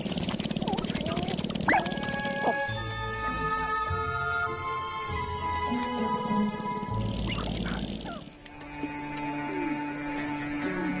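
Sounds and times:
grouse feet and feathers rattling: 0.0 - 3.3, 7.0 - 9.1
grouse gliding calls: 0.5 - 2.7.

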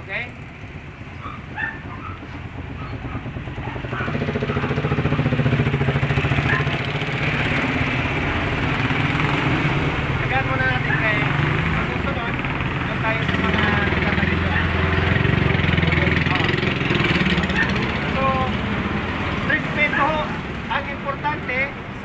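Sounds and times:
motorcycle engine droning: 0.0 - 20.5.

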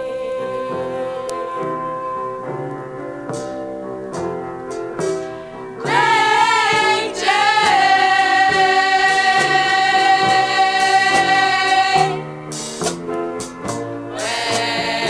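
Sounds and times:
women's vocal group singing: 0.0 - 2.2, 5.8 - 12.3, 14.1 - 15.0
instrumental backing: 0.0 - 15.0.

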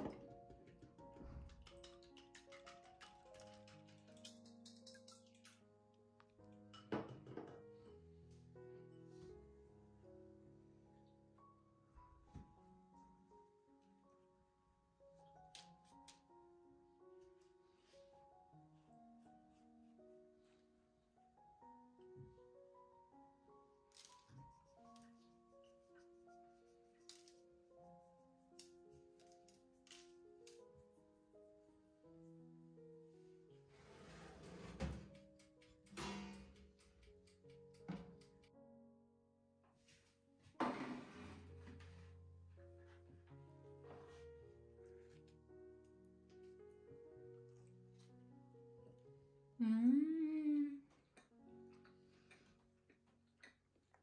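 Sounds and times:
slow background music: 0.0 - 54.0.

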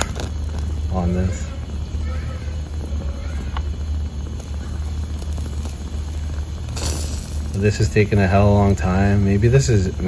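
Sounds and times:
gas flames burning: 0.0 - 10.0.

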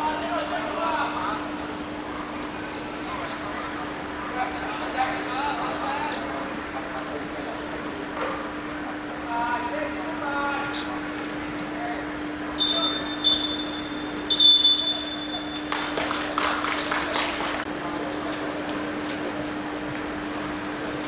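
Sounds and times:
steady low hum: 0.0 - 21.0
referee's whistle blasts: 11.5 - 15.7
people clapping: 15.4 - 17.7.

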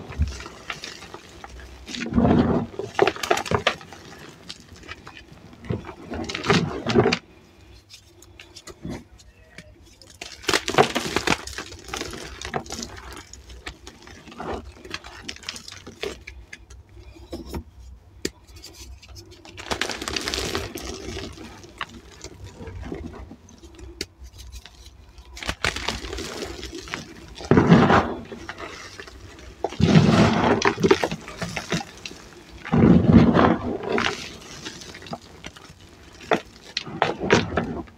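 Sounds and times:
powder falling rustle: 0.0 - 7.1, 9.9 - 16.4, 19.4 - 23.8, 24.6 - 37.9
chalk crumbled by hand: 18.3 - 37.9.

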